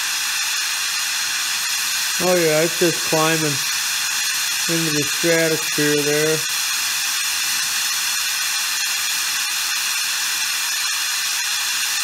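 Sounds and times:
torch flame hissing: 0:00.0 - 0:12.0
thin high steady tones: 0:01.6 - 0:10.9.

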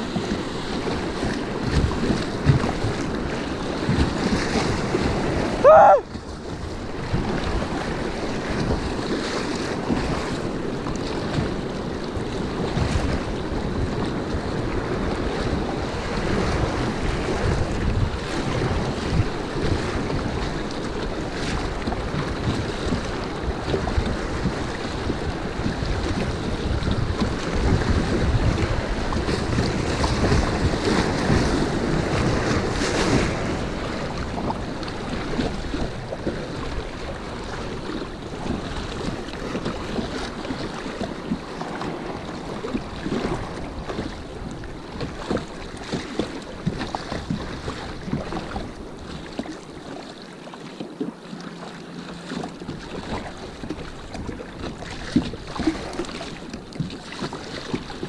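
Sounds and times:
wind buffeting microphone: 0:00.0 - 0:49.6
whitewater rapids rushing: 0:04.7 - 0:06.1.

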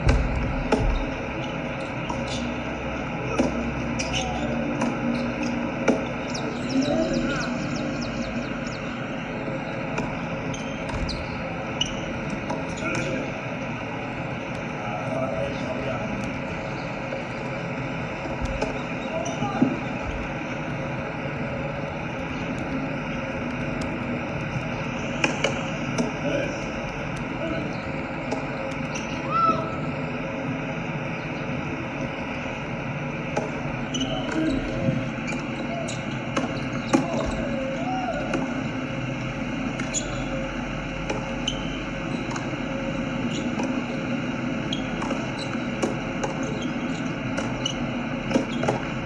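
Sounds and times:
distant voices: 0:00.0 - 0:49.0
outdoor hum: 0:00.0 - 0:49.0.

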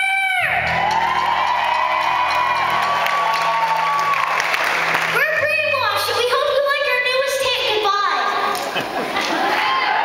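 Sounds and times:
crowd cheering and whooping: 0:00.0 - 0:05.2, 0:09.0 - 0:10.0.

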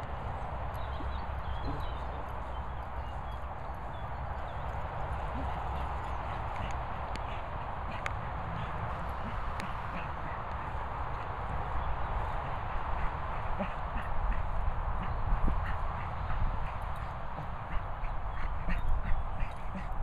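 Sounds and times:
wind on microphone: 0:00.0 - 0:20.0.

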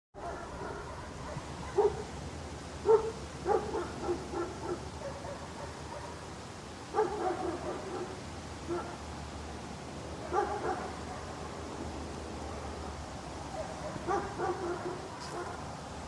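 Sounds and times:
dog barking: 0:00.2 - 0:02.2, 0:02.8 - 0:06.3, 0:06.9 - 0:09.0, 0:10.2 - 0:11.6, 0:13.5 - 0:15.7
outdoor background hiss: 0:00.2 - 0:16.0.

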